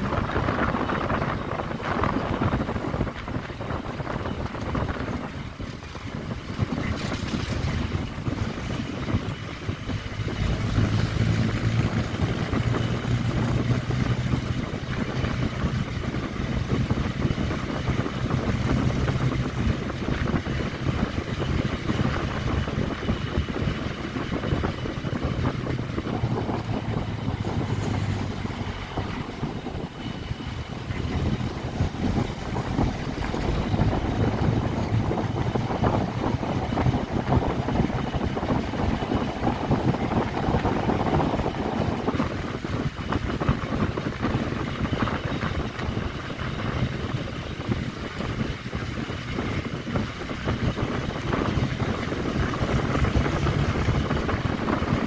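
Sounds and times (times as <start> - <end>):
road noise: 0.0 - 55.0
vehicle engine humming: 0.0 - 55.0
wind buffeting microphone: 0.0 - 55.0.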